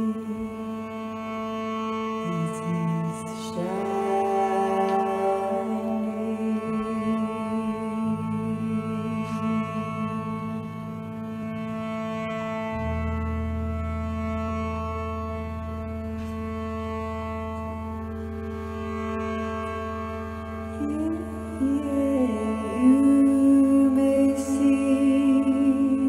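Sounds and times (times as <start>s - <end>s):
band playing instrumental drone: 0.0s - 26.0s
bowed cello: 0.0s - 26.0s.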